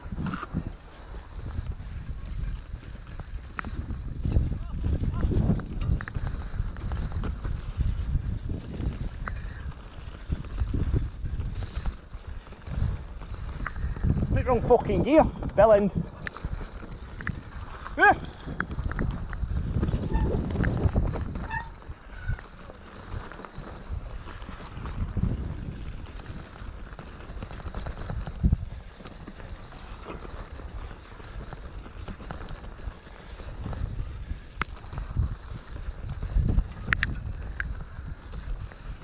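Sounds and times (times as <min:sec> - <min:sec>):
bike tyre rumble on dirt: 0:00.0 - 0:39.0
wind on microphone: 0:00.0 - 0:39.0
bike rattles and knocks: 0:01.4 - 0:39.0
person calling out: 0:18.0 - 0:18.2.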